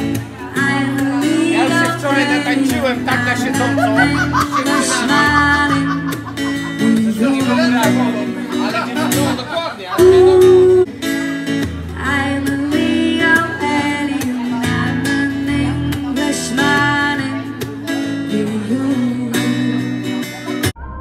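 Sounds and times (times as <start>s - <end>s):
acoustic guitar strummed: 0.0s - 21.0s
woman singing: 0.1s - 7.7s, 10.0s - 10.9s, 11.9s - 20.0s.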